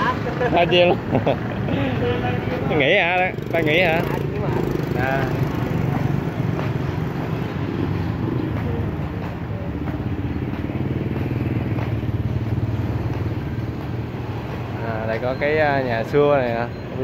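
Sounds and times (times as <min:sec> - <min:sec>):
street traffic: 0:00.0 - 0:17.0
motorbike engine running: 0:02.7 - 0:14.8.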